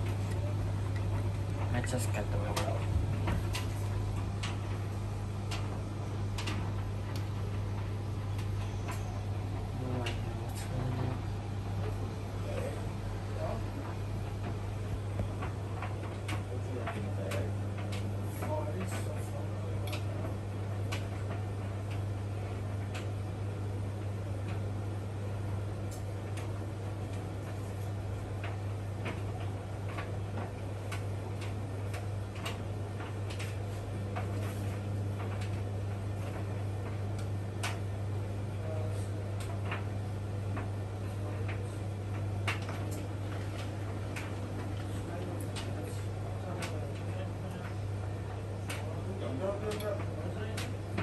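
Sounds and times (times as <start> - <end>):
washing machine humming: 0.0 - 51.0
light regular clicks: 0.2 - 10.7, 13.4 - 23.3, 25.8 - 51.0.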